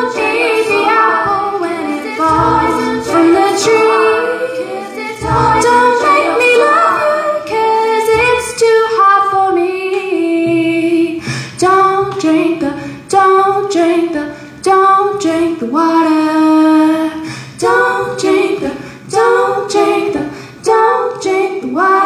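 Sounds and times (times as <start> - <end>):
looped a cappella female vocals: 0.0 - 22.0.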